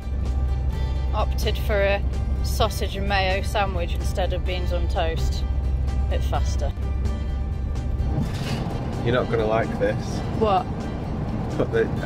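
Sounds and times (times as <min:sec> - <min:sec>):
background music: 0:00.0 - 0:12.0
low rumble: 0:00.0 - 0:12.0.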